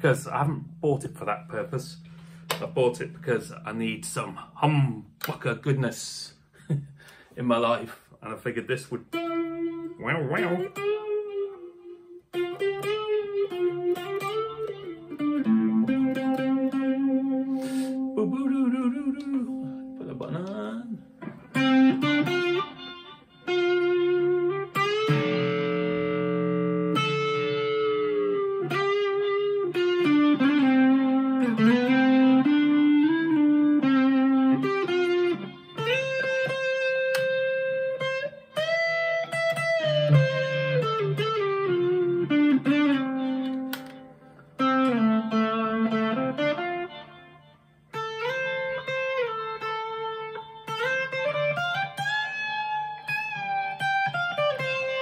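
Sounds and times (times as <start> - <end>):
electric guitar lead with bends: 0.0 - 5.3, 9.1 - 55.0.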